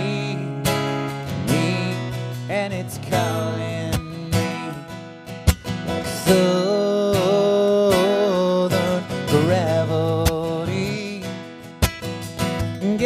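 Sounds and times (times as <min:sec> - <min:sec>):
man singing: 0:00.0 - 0:05.1, 0:05.9 - 0:11.7, 0:12.5 - 0:13.0
acoustic guitar strumming: 0:00.0 - 0:13.0.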